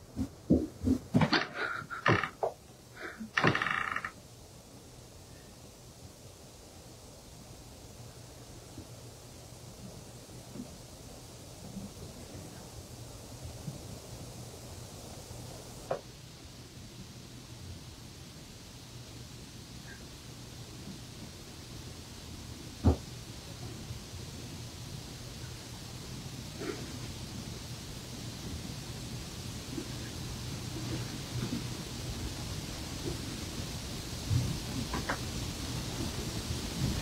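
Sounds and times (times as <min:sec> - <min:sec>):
faint background hiss: 0:00.0 - 0:37.0
steady low hum: 0:00.0 - 0:37.0
knocks: 0:03.4 - 0:04.1.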